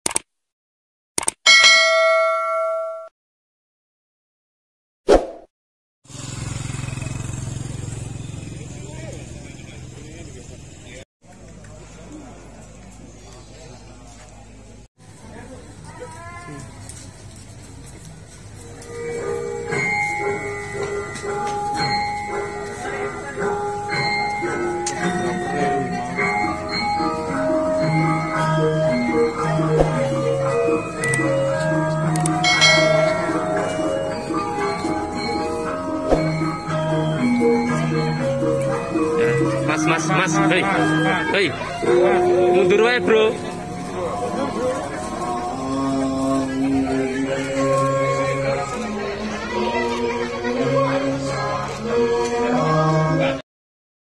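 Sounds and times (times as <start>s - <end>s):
bright bell-like strike: 1.5s - 3.1s, 32.3s - 44.7s
motorcycle engine running: 6.1s - 11.0s
gamelan music struck metal tones: 19.0s - 45.6s
people talking faintly: 40.7s - 53.4s.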